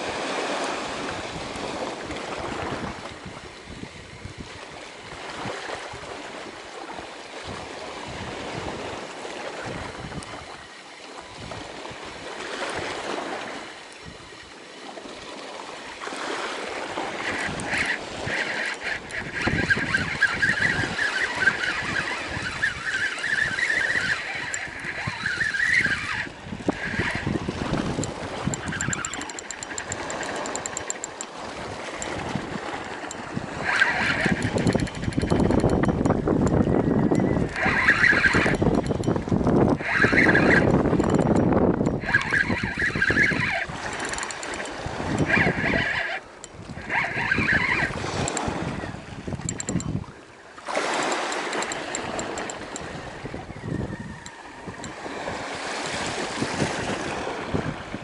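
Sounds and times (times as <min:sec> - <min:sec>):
wind on microphone: 0:00.0 - 0:58.0
fishing reel reeling: 0:04.2 - 0:15.0, 0:15.6 - 0:57.4
fishing reel drag buzzing: 0:07.9 - 0:15.0, 0:15.6 - 0:57.2.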